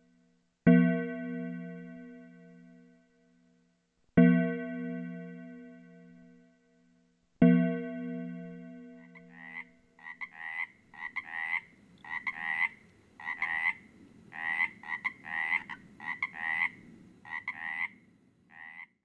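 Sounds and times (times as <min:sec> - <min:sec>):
frog croaking: 0:09.0 - 0:19.0.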